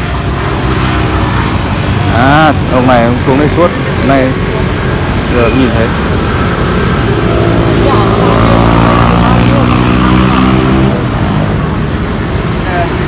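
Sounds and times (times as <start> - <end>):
street traffic noise: 0.0 - 13.0
vehicle engine humming: 0.0 - 13.0.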